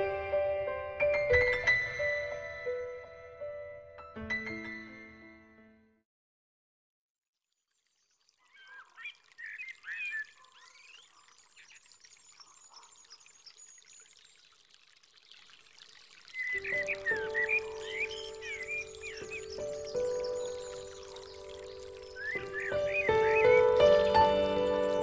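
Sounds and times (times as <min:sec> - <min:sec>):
soft music with held notes: 0:00.0 - 0:06.0, 0:16.6 - 0:25.0
water trickling: 0:07.4 - 0:25.0
birds chirping: 0:07.8 - 0:25.0.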